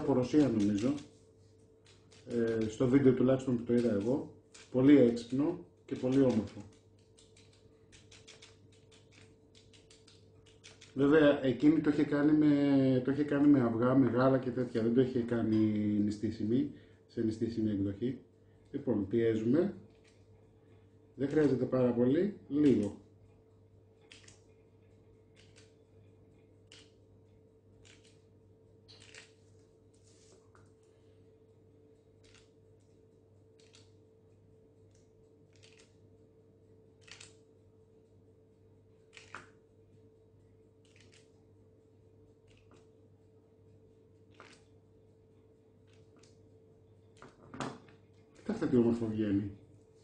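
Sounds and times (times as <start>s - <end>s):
man talking: 0.0s - 1.1s, 2.3s - 6.7s, 11.0s - 19.8s, 21.2s - 23.0s, 48.4s - 49.6s
knife scratching dough: 0.0s - 11.2s
low steady hum: 0.0s - 50.0s.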